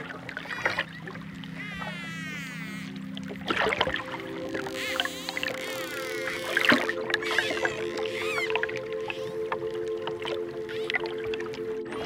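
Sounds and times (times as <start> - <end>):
calm music with held notes: 0.0 - 12.0
dolphins whistling: 0.4 - 12.0
dolphin clicks: 4.1 - 9.7.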